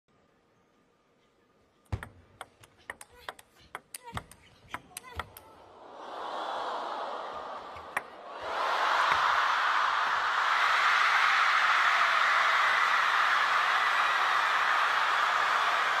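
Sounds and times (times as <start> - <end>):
crowd cheering and applauding: 5.6 - 16.0.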